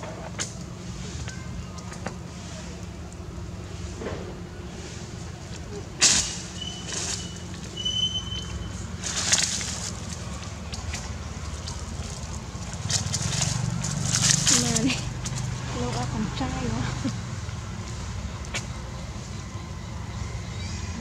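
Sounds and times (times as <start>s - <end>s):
steady low hum: 0.0s - 21.0s
faint voices: 0.8s - 7.4s
rustling in dry leaves: 4.6s - 21.0s
thin high whistle-like call: 6.1s - 8.8s.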